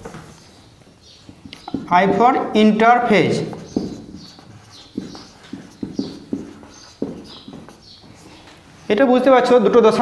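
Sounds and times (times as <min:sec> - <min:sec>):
whiteboard marker squeaking: 0:03.0 - 0:08.9.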